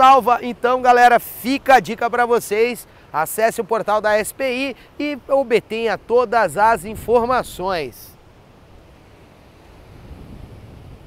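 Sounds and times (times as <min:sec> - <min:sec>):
wind rumbling on microphone: 0:06.5 - 0:11.0.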